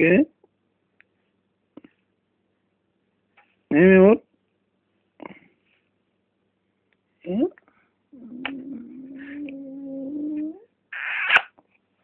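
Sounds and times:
baby cooing: 8.2 - 11.4.

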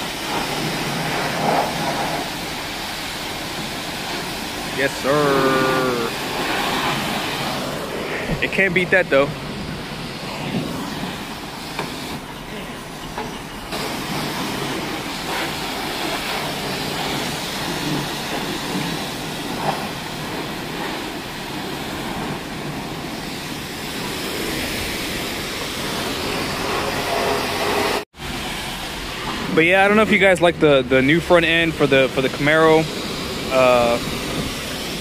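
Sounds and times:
high-pressure water spray hissing: 0.0 - 35.0.

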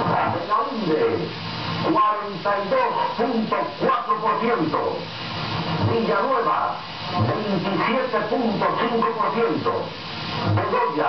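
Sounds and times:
man reading on old broadcast: 0.0 - 11.0
steady background hiss: 0.0 - 11.0.

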